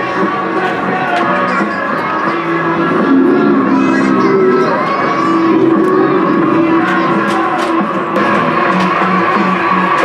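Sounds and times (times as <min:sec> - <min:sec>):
children shouting: 0:01.1 - 0:07.8
music playing: 0:02.4 - 0:08.4.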